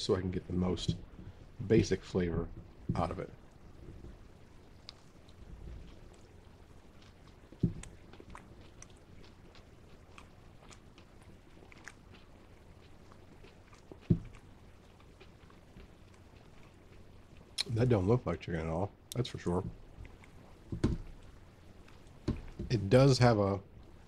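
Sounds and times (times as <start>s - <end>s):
low thumps: 0.7s - 3.2s
person chewing crunchy food: 3.5s - 17.7s, 19.7s - 22.8s.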